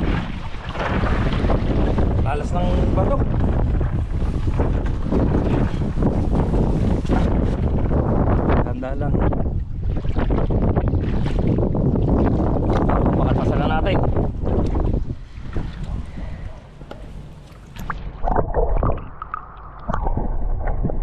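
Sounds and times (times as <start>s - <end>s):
water noise: 0.0s - 21.0s
wind on microphone: 0.0s - 21.0s
muffled underwater sound: 12.5s - 21.0s.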